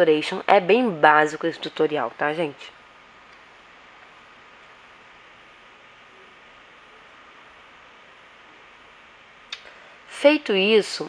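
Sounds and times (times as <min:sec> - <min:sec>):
background hiss: 0:00.0 - 0:11.0.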